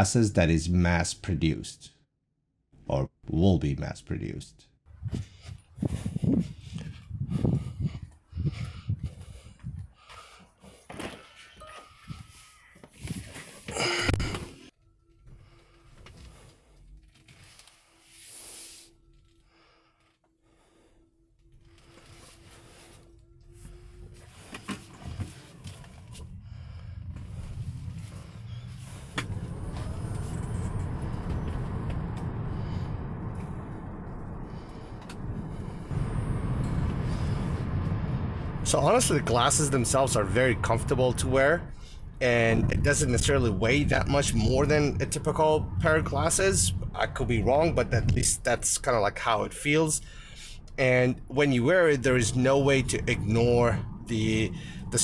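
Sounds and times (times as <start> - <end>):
man breathing: 5.1 - 38.6, 50.0 - 50.8, 54.6 - 54.9
car cabin road and engine rumble: 23.6 - 55.0
loud noisy burst: 26.1 - 55.0.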